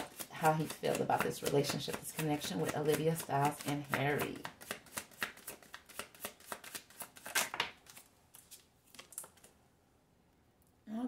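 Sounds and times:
cards being shuffled: 0.0s - 9.6s.

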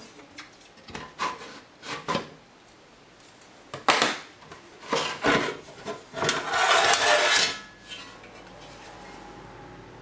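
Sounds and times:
casing scraping on metal: 6.2s - 9.3s.

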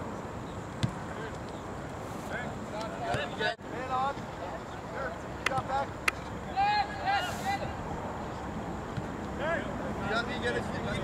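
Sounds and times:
outdoor background noise: 0.0s - 11.0s
distant players shouting: 3.0s - 7.9s.

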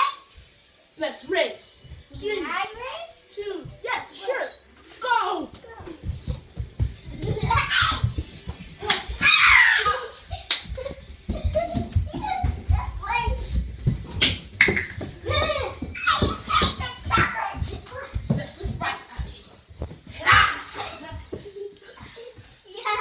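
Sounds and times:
running footsteps on floor: 5.5s - 23.0s
children shouting and squealing: 7.2s - 13.5s, 15.2s - 18.2s, 20.2s - 21.0s.

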